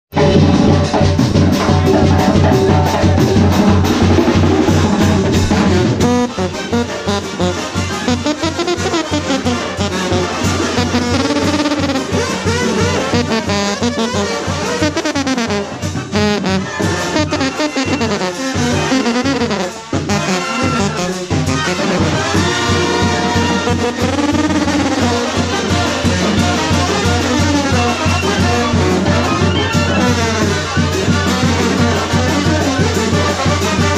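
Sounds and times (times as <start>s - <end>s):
brass band playing: 0.1s - 33.9s
low sousaphone notes: 1.6s - 10.2s.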